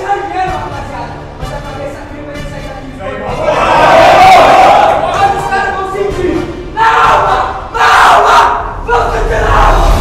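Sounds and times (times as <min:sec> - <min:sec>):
group shouting in unison: 0:03.3 - 0:05.5, 0:06.7 - 0:10.0.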